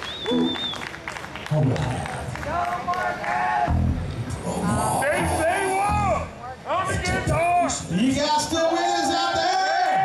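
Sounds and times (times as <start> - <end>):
electric guitar notes: 3.6 - 4.4
deep low note: 3.7 - 6.4
voice through speakers: 4.2 - 10.0.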